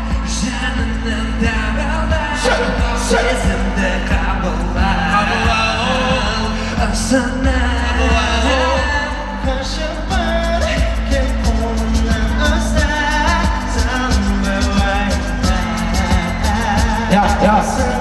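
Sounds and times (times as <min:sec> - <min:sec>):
deep bass beat: 0:00.0 - 0:18.0
male vocal group singing: 0:00.0 - 0:18.0.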